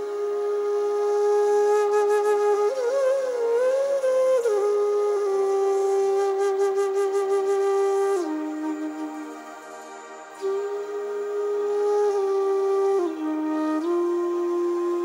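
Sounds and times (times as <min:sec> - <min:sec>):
bamboo flute playing slow melody: 0:00.0 - 0:15.0.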